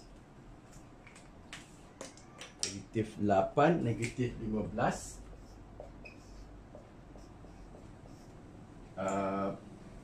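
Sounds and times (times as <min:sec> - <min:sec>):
low steady hum: 0:00.0 - 0:10.0
marker pen writing on whiteboard: 0:03.8 - 0:09.2.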